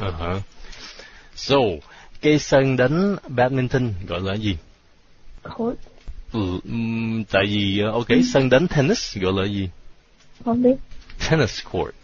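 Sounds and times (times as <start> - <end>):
man speaking slowly: 6.3 - 9.0.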